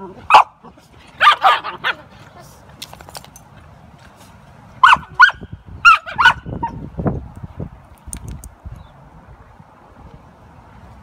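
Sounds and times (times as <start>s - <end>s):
dogs barking in sharp yaps: 1.2s - 2.0s, 4.8s - 6.8s.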